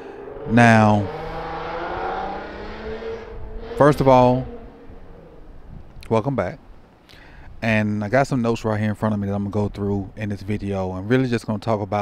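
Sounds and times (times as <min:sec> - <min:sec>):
motor vehicle noise: 0:00.0 - 0:07.6.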